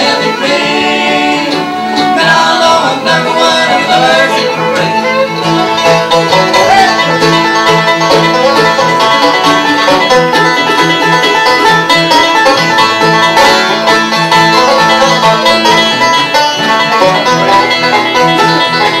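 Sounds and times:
banjo picking lead: 0.0 - 19.0
strummed acoustic guitar: 0.0 - 19.0.

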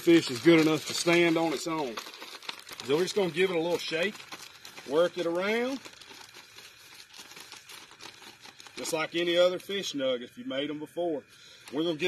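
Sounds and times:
plastic bag crinkling: 0.0 - 9.9, 11.5 - 12.0.

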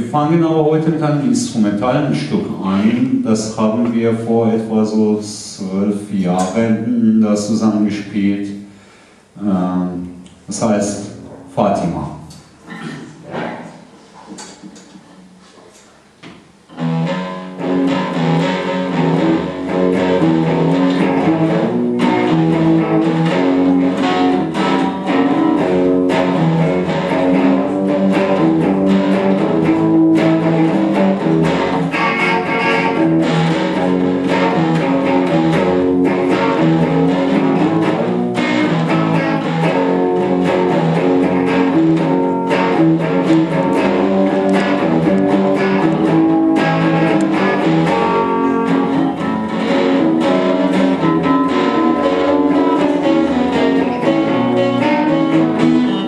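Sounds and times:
acoustic guitar strummed: 16.7 - 56.0
electric guitar: 16.7 - 56.0.

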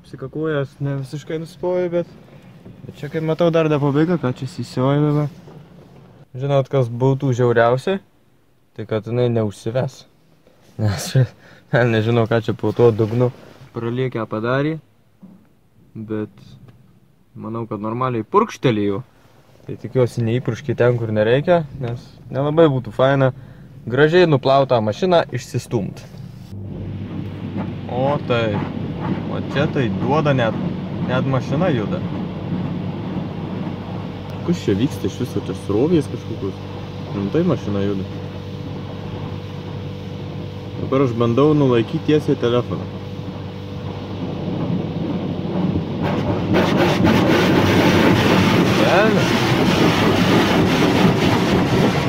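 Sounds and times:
car wash water jets spraying: 0.0 - 6.3, 19.2 - 52.0
low hum: 19.0 - 52.0.

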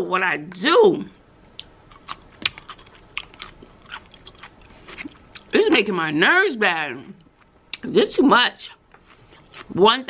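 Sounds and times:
person chewing crunchy food: 1.5 - 5.5, 8.8 - 9.8.

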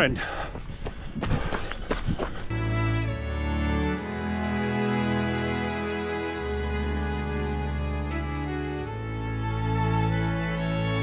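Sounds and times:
footfalls on dirt track: 0.5 - 2.5
music with long held chords: 2.5 - 11.0.

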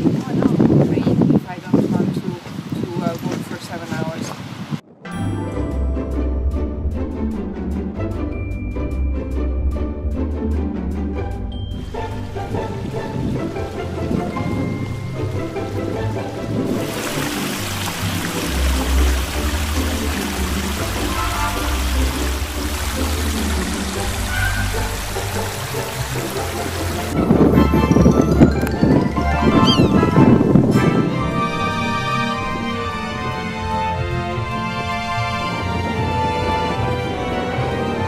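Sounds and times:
background music: 5.0 - 38.0
stream rushing over rocks: 12.1 - 30.7.

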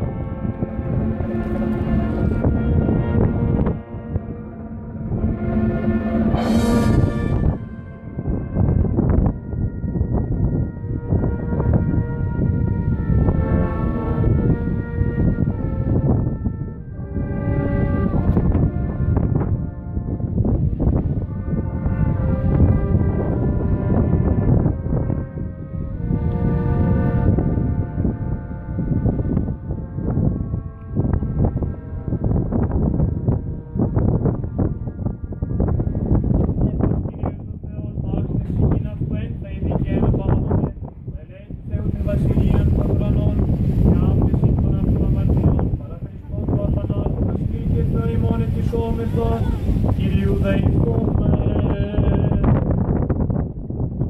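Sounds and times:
wind rumbling on microphone: 0.0 - 54.0
men chanting hymns: 46.2 - 52.6.

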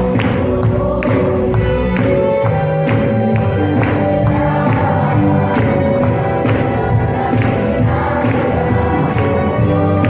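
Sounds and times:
choir singing gospel song: 0.0 - 10.0
steady beat: 0.0 - 10.0.

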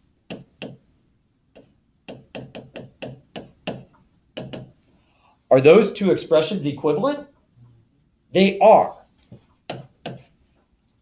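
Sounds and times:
stylus tapping on touchscreen: 0.3 - 0.8, 1.5 - 4.8, 9.3 - 10.3.

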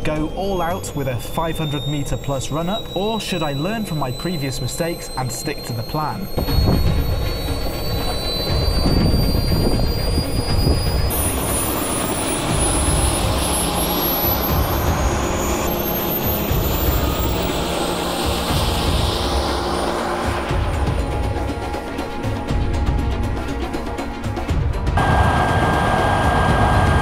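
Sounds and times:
jet engine whine: 0.0 - 27.0
wind on microphone: 6.3 - 13.4.

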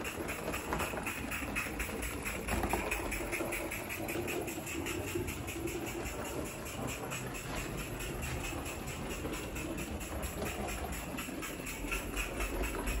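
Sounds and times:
model steam locomotive chuffing: 0.0 - 13.0
steady steam hiss: 0.0 - 13.0.

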